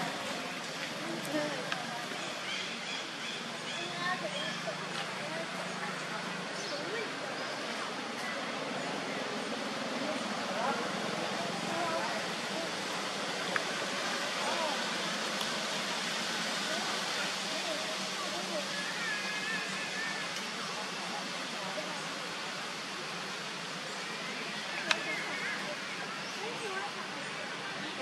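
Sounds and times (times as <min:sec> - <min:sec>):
outdoor background hiss: 0:00.0 - 0:28.0.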